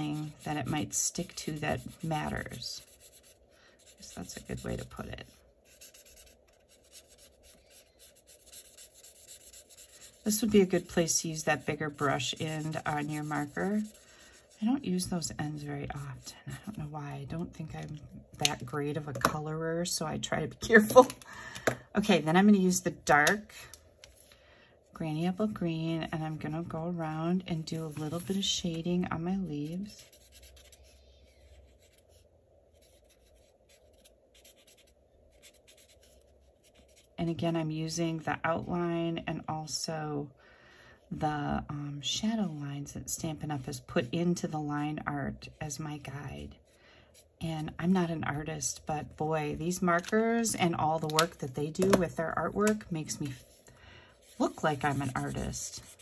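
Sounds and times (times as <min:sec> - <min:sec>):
marker rubbing on cardstock: 0:00.0 - 0:14.9, 0:54.2 - 0:56.0.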